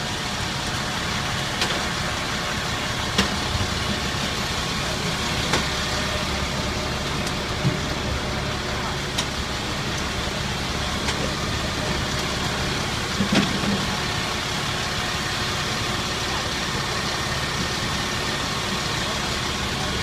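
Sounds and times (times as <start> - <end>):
engine idling: 0.0 - 20.0
street traffic hum: 0.0 - 20.0.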